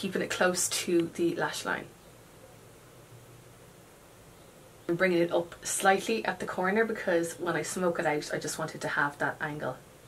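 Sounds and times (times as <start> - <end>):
woman speaking: 0.0 - 2.0, 4.9 - 9.8
low hiss: 0.0 - 10.0
weak hum: 0.0 - 10.0.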